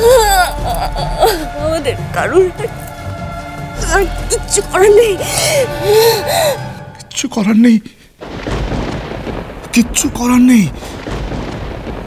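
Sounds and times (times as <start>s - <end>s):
person crying out in distress: 0.0s - 1.8s.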